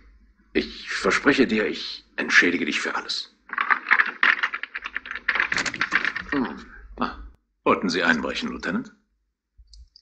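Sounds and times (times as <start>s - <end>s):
door lock clicking and rattling: 3.5s - 6.3s.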